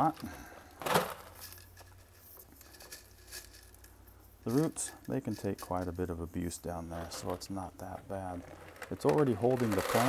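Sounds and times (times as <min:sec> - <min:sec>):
clay pebbles clicking and rustling: 0:00.1 - 0:10.0.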